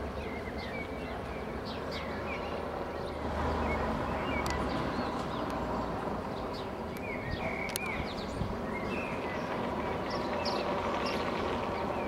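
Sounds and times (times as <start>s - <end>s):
small birds chirping: 0.0s - 12.0s.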